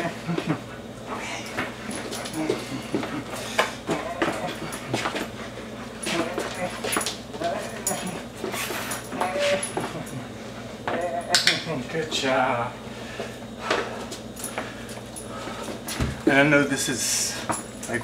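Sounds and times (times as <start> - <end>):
dog whining: 0.0 - 5.0, 6.0 - 10.3, 10.9 - 11.4
dog claws clicking on floor: 1.4 - 5.3, 6.0 - 10.2, 10.9 - 11.7.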